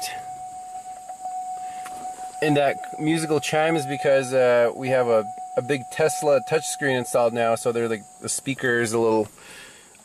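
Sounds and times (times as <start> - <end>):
held chime tone from speaker: 0.0 - 8.2.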